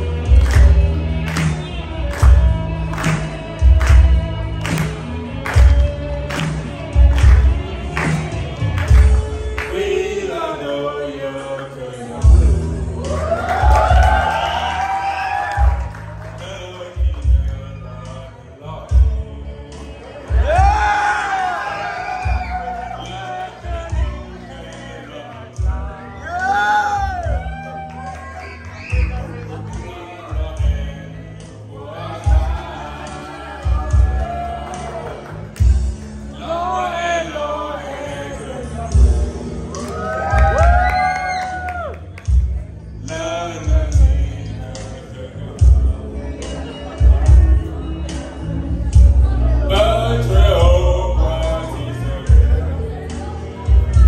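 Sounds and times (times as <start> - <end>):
amplified live music: 0.0 - 54.0
backing track with deep bass: 0.0 - 54.0
crowd cheering: 12.9 - 17.3, 20.0 - 25.4, 26.0 - 30.4, 31.8 - 36.8, 39.7 - 42.4.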